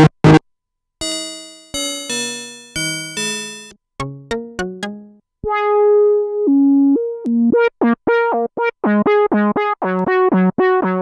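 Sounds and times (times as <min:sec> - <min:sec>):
monophonic synthesizer melody: 0:01.0 - 0:11.0.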